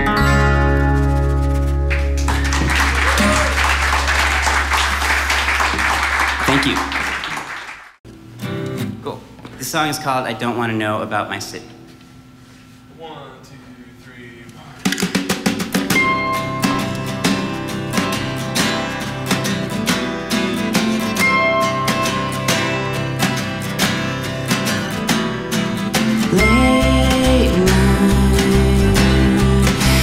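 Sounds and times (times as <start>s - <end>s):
strummed acoustic guitar: 0.0s - 3.8s, 14.9s - 30.0s
bass guitar low notes: 0.0s - 5.3s, 26.2s - 30.0s
snare drum: 14.8s - 16.0s.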